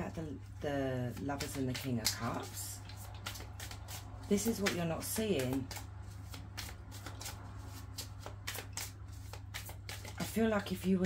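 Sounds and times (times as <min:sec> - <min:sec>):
cards being shuffled: 0:01.1 - 0:11.0.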